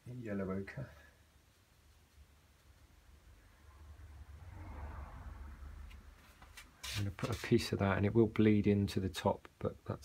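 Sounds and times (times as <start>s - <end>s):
brush swishing on palette: 6.2s - 7.5s.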